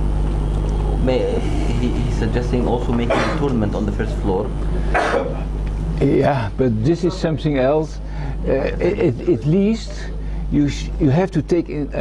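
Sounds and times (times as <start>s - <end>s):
steady low hum: 0.0s - 12.0s
man speaking: 0.9s - 4.6s, 6.0s - 12.0s.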